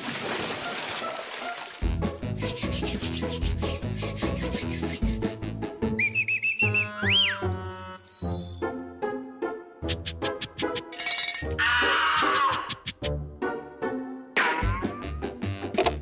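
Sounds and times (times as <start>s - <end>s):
background music: 1.8s - 16.0s
bristle brush scrubbing: 2.4s - 5.2s
rising and falling whistle: 6.0s - 7.5s.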